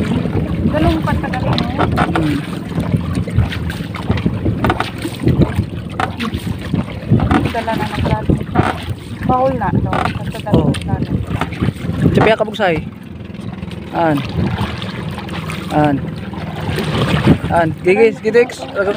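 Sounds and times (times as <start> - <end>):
boat engine humming: 0.0 - 18.9
voices talking: 0.2 - 2.6, 7.2 - 11.2, 17.5 - 18.9
knocks: 4.1 - 6.4, 7.2 - 7.6, 8.5 - 8.9.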